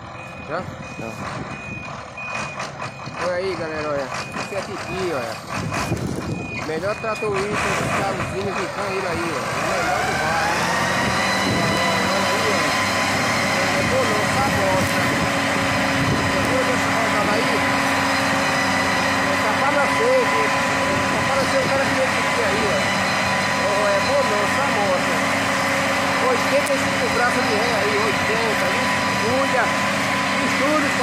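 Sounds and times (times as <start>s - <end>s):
tractor diesel engine under load: 0.0s - 31.0s.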